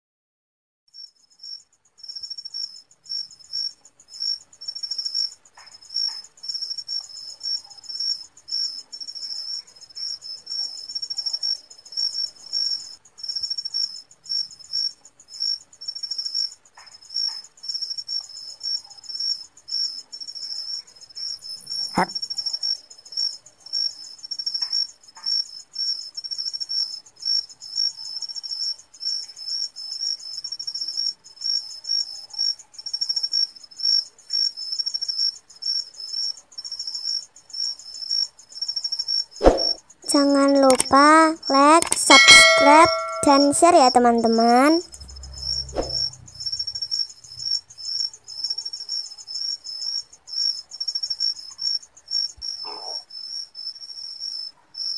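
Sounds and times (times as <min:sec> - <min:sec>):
night insects chirping: 0:01.0 - 0:41.4, 0:44.9 - 0:54.9
sharp click: 0:40.6 - 0:41.0, 0:41.8 - 0:43.6.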